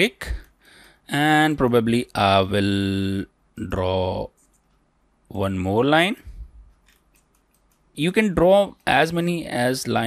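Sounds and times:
faint computer mouse clicks: 6.7s - 7.9s.

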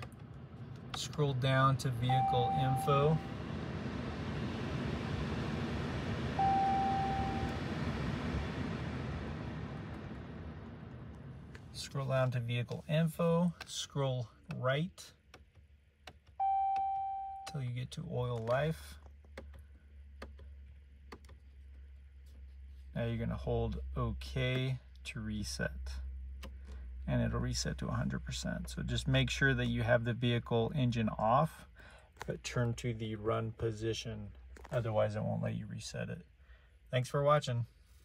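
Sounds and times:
low rumble: 0.0s - 12.6s
steady low hum: 0.0s - 38.0s
electronic chime: 2.1s - 3.3s, 6.4s - 7.6s.

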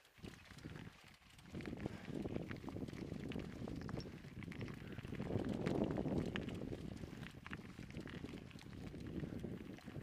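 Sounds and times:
footsteps on rocky gravel: 0.3s - 10.0s.

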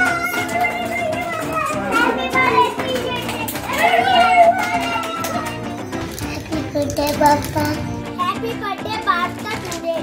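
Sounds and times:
child shouting: 0.0s - 5.7s
children calling and chattering: 0.0s - 10.0s.

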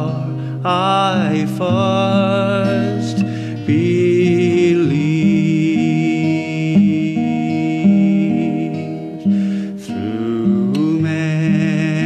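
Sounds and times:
acoustic guitar strumming: 0.0s - 12.0s
man singing a hymn: 0.0s - 12.0s.

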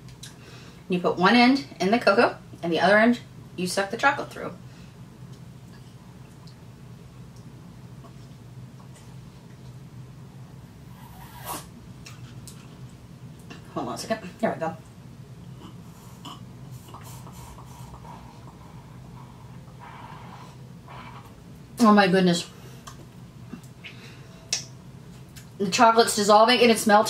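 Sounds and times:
slurping hot drink: 10.9s - 11.7s.

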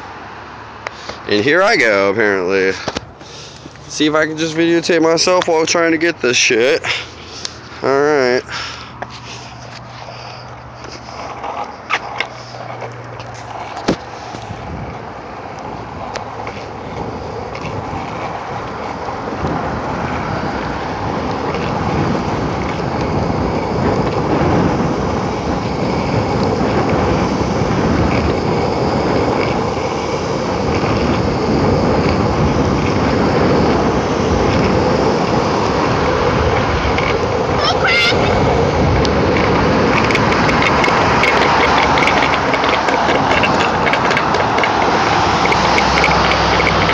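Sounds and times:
longboard wheels rolling on asphalt: 0.0s - 46.9s.

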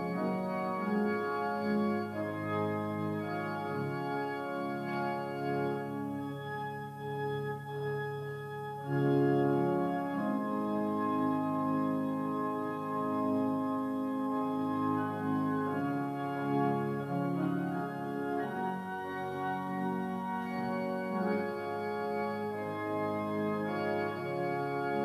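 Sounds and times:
organ playing sustained chords: 0.0s - 25.0s.

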